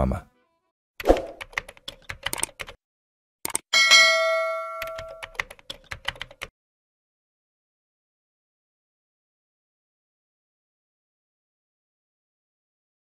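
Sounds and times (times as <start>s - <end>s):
keyboard typing clicks: 1.0s - 2.8s, 3.4s - 3.7s, 4.8s - 6.5s
bell ding: 3.8s - 5.3s.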